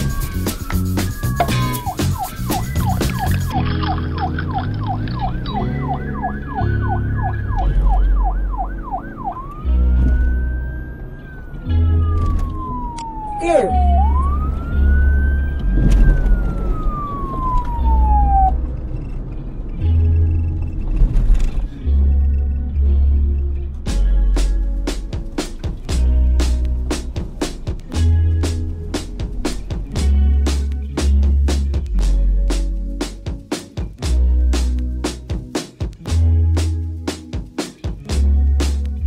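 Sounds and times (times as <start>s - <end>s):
police siren: 0.0s - 19.3s
background music: 0.0s - 39.0s.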